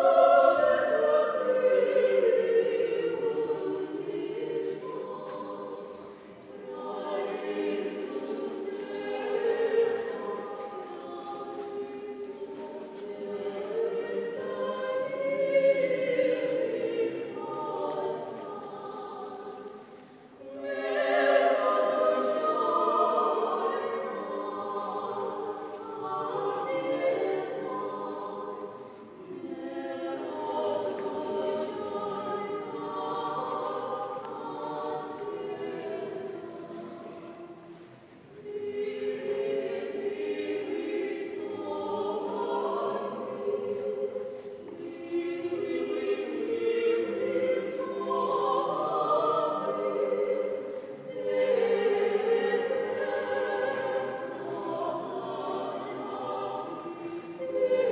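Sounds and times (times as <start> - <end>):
choir singing unaccompanied: 0.0 - 57.9.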